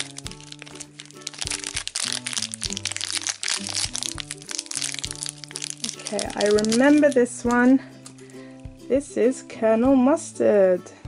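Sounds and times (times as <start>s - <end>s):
plastic packets crinkling: 0.0s - 8.4s
background music: 0.0s - 11.0s.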